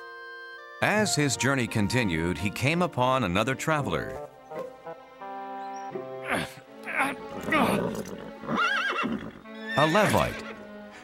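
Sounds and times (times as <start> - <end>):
background music: 0.0 - 11.0
cartoon horse whinnying: 6.2 - 10.5.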